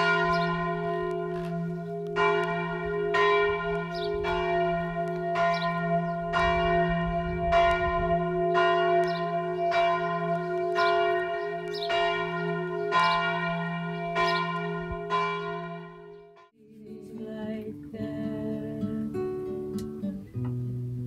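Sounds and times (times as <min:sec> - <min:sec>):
church bell tolling: 0:00.0 - 0:16.5.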